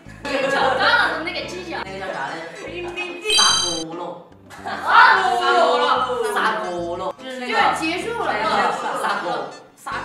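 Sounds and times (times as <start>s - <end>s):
boys talking: 0.3s - 9.5s
bright ding sound effect: 3.3s - 3.8s.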